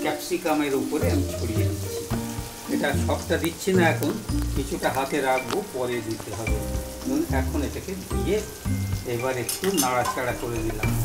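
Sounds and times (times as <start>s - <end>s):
background music: 0.0s - 11.0s
pepper sizzling in hot oil: 0.0s - 11.0s.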